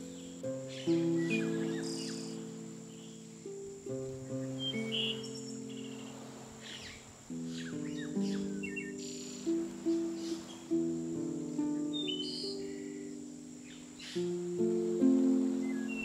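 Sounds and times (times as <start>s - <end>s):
harp chords: 0.0s - 16.0s
small birds chirping: 0.0s - 16.0s.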